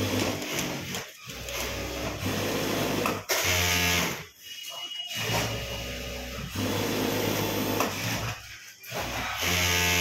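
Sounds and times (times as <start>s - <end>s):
sewing machine stitching: 0.0s - 4.2s, 6.4s - 10.0s.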